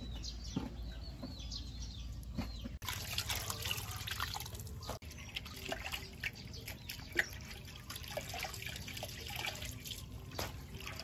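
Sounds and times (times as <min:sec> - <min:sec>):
water splashing and sloshing: 0:02.6 - 0:11.0.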